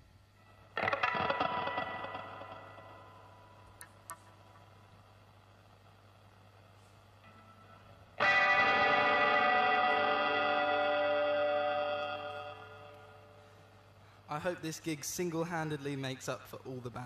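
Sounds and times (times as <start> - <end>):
electric guitar chord ringing: 0.4 - 4.6, 7.2 - 14.2.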